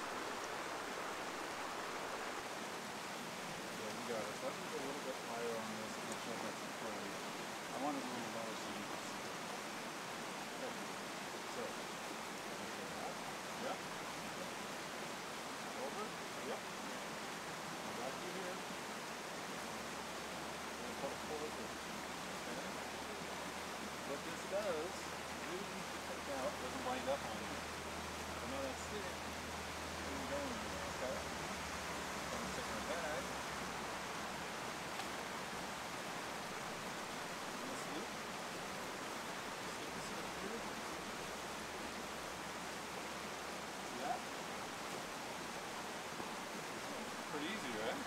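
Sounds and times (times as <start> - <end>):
creek rushing: 0.0 - 48.0
faint indistinct voices: 3.7 - 48.0.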